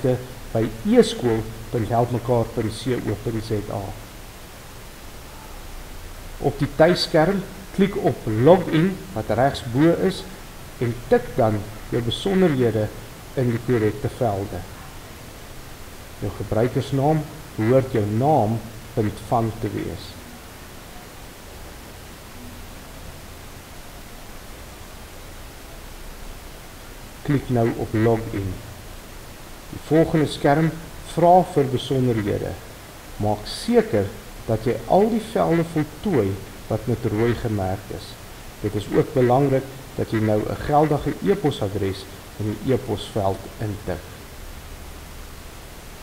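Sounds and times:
man speaking: 0.0s - 4.1s, 6.4s - 14.9s, 16.2s - 20.3s, 27.2s - 28.8s, 29.7s - 44.2s
recording background hiss: 0.0s - 46.0s.

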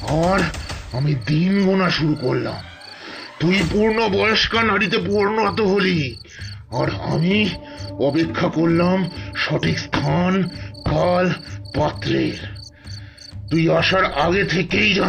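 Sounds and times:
man talking: 0.0s - 2.7s, 3.4s - 12.6s, 13.5s - 15.0s
crickets chirping: 0.0s - 15.0s.

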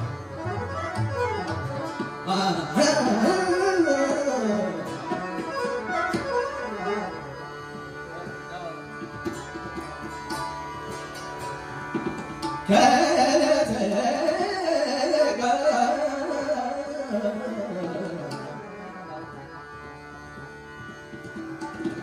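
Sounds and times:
tabla strokes: 0.0s - 18.9s, 20.2s - 22.0s
harmonium: 0.0s - 22.0s
tanpura drone: 0.0s - 22.0s.

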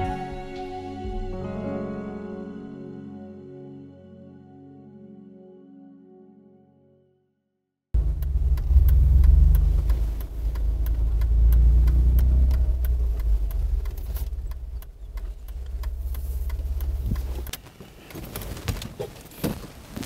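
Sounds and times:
light ticks: 8.0s - 18.6s
suv engine rumbling: 8.0s - 19.6s.

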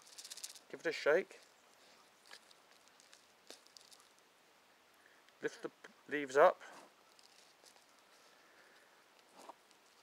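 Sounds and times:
compost and plastic pot rustling: 0.0s - 4.2s, 6.5s - 10.0s.

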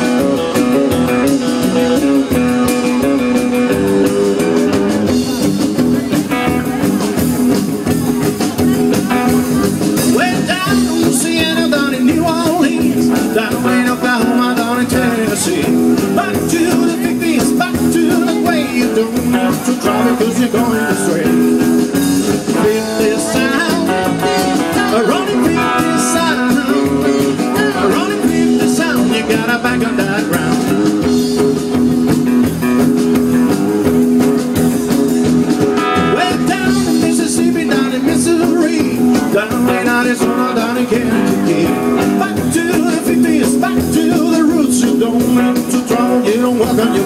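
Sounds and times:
rock and roll band playing: 0.0s - 47.0s
person singing: 5.1s - 31.2s, 34.6s - 47.0s.

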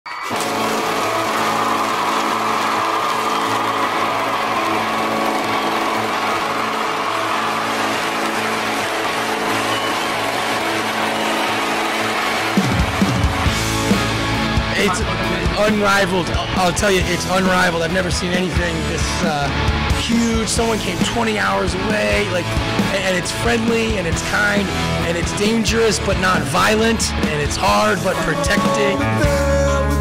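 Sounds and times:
drums and bass hits: 11.8s - 15.6s.

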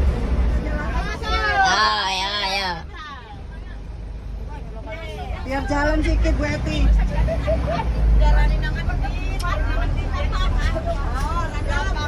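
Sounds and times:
bus engine and road rumble: 0.0s - 12.0s
people talking: 0.6s - 12.0s.

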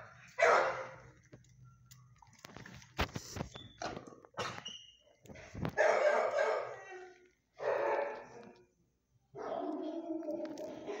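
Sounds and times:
dogs barking: 0.0s - 1.1s, 5.7s - 6.8s, 7.6s - 8.4s, 9.4s - 11.0s.

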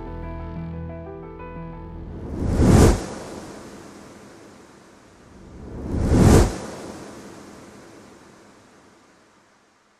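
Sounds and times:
whoosh sound effects: 2.1s - 4.5s, 5.2s - 8.3s.

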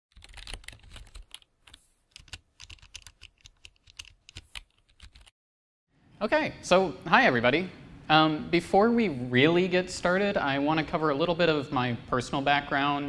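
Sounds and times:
typing on computer keyboard: 0.1s - 5.3s.

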